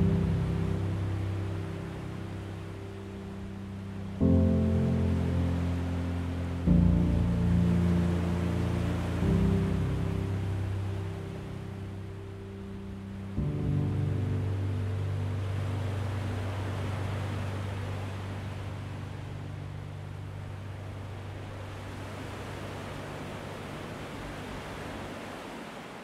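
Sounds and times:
slow gentle piano music: 0:00.0 - 0:25.1
ocean waves breaking: 0:00.0 - 0:26.0.

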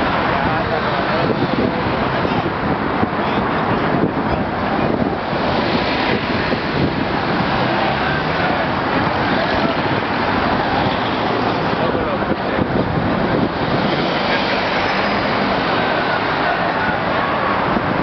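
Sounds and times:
crowd of marchers voices: 0:00.0 - 0:18.0.

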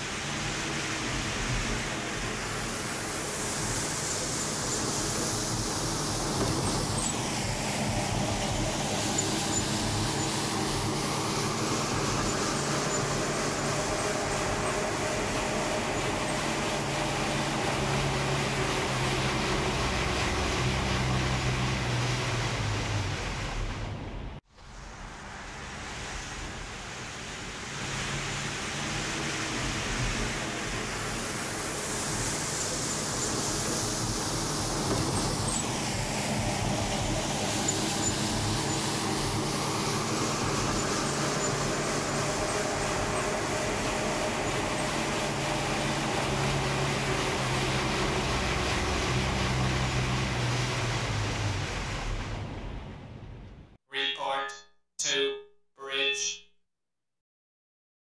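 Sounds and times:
road traffic passing: 0:00.0 - 0:53.8.

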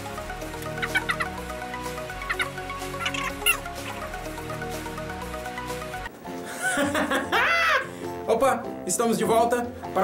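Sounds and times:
background music: 0:00.0 - 0:10.0
chicken clucking calls: 0:00.8 - 0:01.4, 0:02.1 - 0:04.0.

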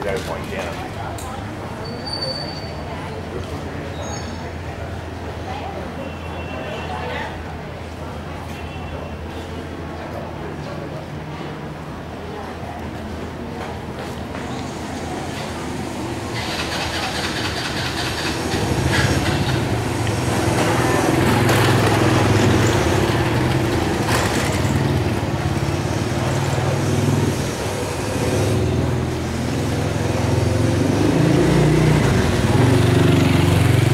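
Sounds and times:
scooter engine running: 0:15.8 - 0:33.9.

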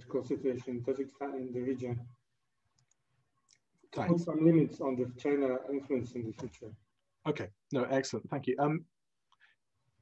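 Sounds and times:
man speaking: 0:00.0 - 0:02.2, 0:04.0 - 0:08.9.

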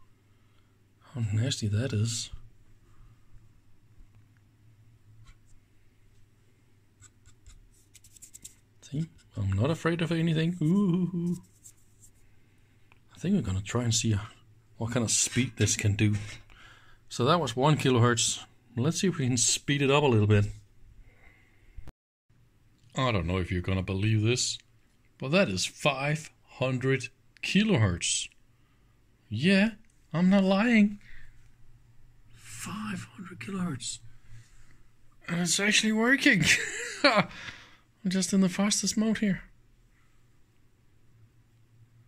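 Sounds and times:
low steady hum: 0:00.0 - 0:42.0.

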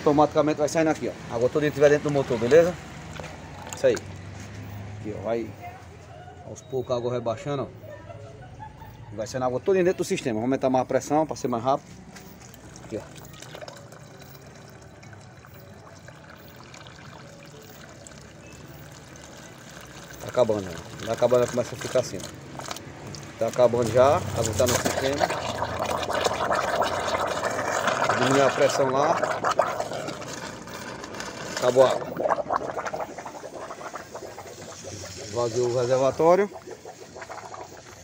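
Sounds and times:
water splashing into floor drain: 0:12.2 - 0:38.0.

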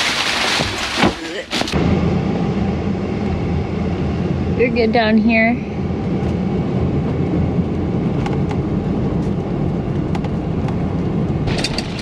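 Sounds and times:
plastic bag rustling: 0:00.0 - 0:01.8.

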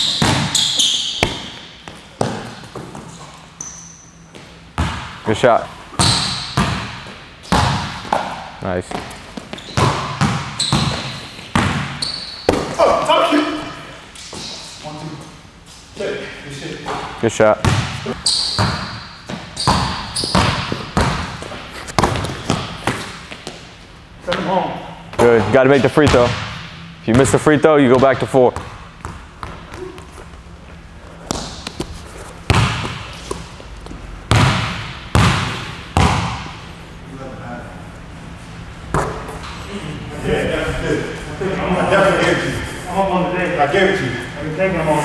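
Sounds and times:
basketball bouncing on wooden floor: 0:00.1 - 0:03.1, 0:04.3 - 0:05.2, 0:06.0 - 0:12.7, 0:16.9 - 0:23.6, 0:32.5 - 0:33.4, 0:34.3 - 0:36.5.

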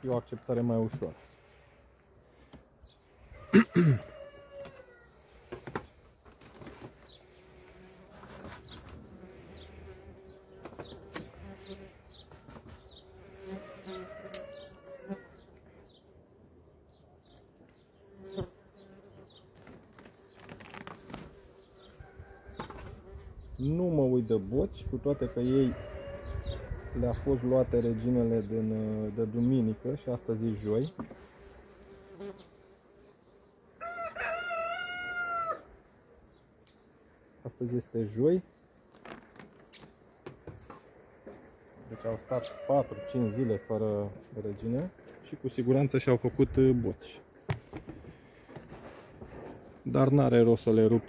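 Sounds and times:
honeybees humming: 0:01.0 - 0:17.0, 0:25.3 - 0:34.8
rooster crowing: 0:03.3 - 0:05.2, 0:13.4 - 0:15.4, 0:21.9 - 0:22.9, 0:25.2 - 0:27.1, 0:33.8 - 0:35.7, 0:41.9 - 0:43.8
bees buzzing: 0:07.0 - 0:15.5, 0:29.2 - 0:33.8
hive lid knocks and scrapes: 0:22.5 - 0:23.0, 0:30.9 - 0:31.2.

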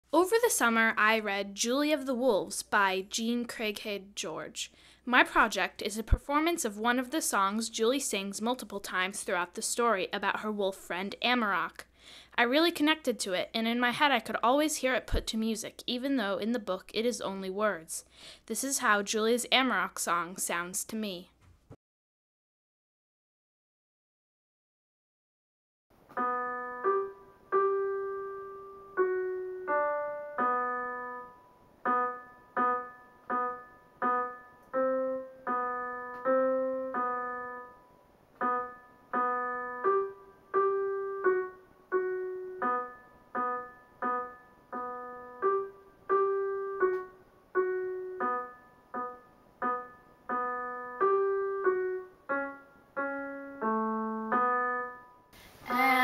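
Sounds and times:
electronic keyboard piano notes: 0:26.0 - 0:55.3.

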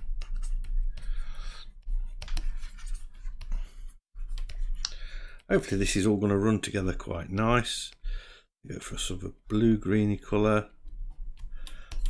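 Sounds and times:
stylus scratching on tablet: 0:00.0 - 0:04.8.

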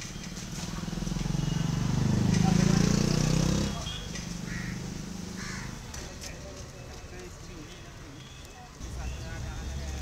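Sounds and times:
faint street background noise: 0:00.0 - 0:10.0
crows cawing: 0:04.4 - 0:04.8, 0:05.4 - 0:05.8.

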